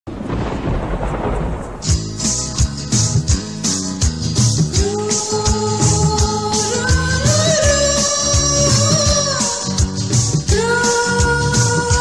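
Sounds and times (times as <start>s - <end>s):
loud low rumbling: 0.1s - 3.1s
drum hit: 0.1s - 3.5s
music: 1.7s - 12.0s.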